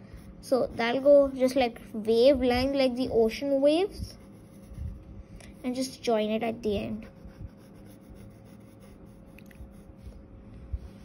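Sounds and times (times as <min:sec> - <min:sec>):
pencil scratching on paper: 0:00.1 - 0:01.4, 0:04.1 - 0:05.9, 0:06.8 - 0:10.2.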